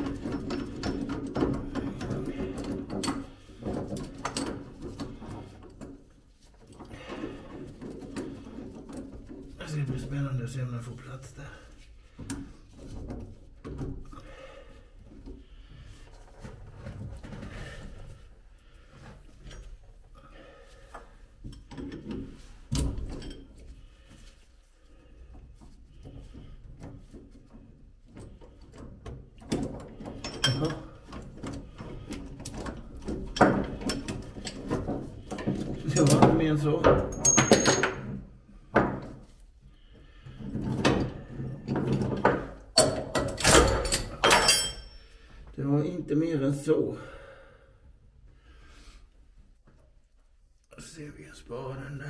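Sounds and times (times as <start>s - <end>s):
metal tools clicking and clinking: 23.0s - 23.5s, 30.2s - 31.0s, 36.9s - 38.1s, 42.8s - 45.0s.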